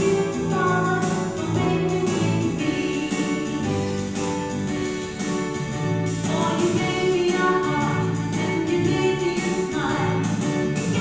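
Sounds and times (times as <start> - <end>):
keyboard accompaniment: 0.0 - 11.0.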